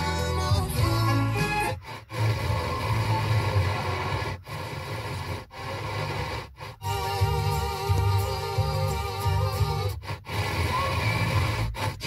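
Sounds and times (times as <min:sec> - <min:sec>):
radio static hiss: 0:01.4 - 0:12.0.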